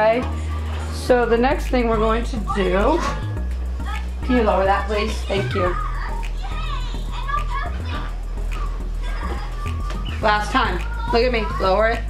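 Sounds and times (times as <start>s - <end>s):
background music: 0.0s - 12.0s
children chattering: 2.1s - 12.0s.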